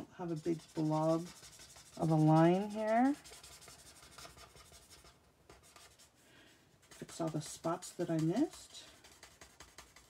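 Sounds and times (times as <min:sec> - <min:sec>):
marker rubbing on cardstock: 0:00.3 - 0:06.2, 0:06.8 - 0:10.0.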